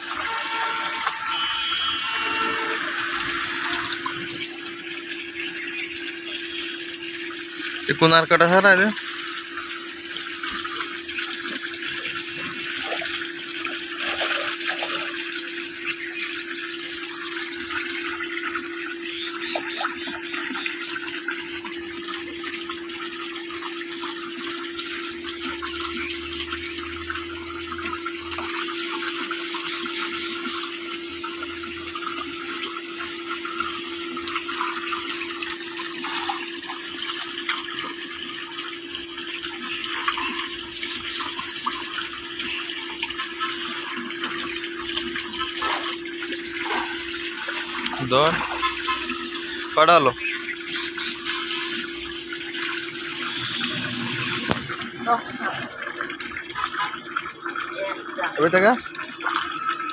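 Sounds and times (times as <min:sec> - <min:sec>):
water pouring into tank: 0:00.0 - 0:59.9.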